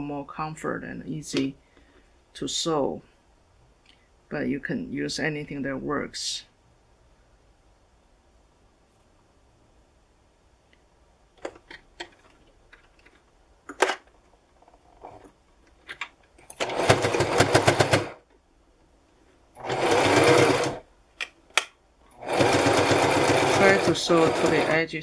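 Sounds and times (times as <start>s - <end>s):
sewing machine stitching: 16.5s - 18.2s, 19.6s - 20.8s, 22.2s - 24.8s.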